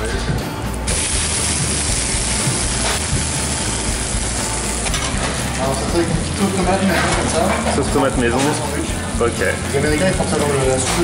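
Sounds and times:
sandwich sizzling in a pan: 0.9s - 6.7s.

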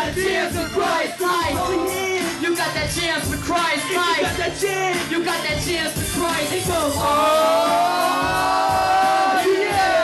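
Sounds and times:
hip hop beat: 0.0s - 10.0s.

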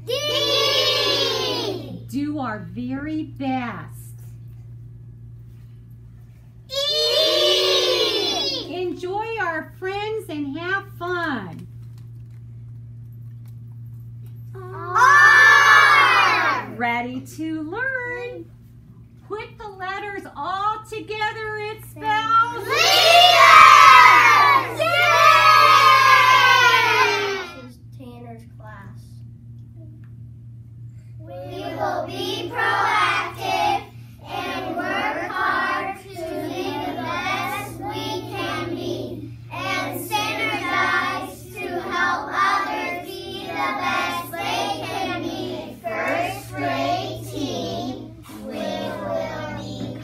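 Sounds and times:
steady low hum: 0.0s - 50.0s
children shouting in unison: 0.1s - 1.9s, 6.7s - 8.7s, 14.6s - 16.7s, 22.6s - 27.6s.

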